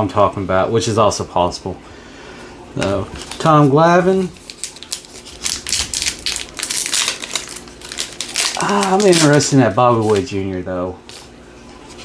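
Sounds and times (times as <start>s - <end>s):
foil wrapper crinkling: 2.8s - 10.4s.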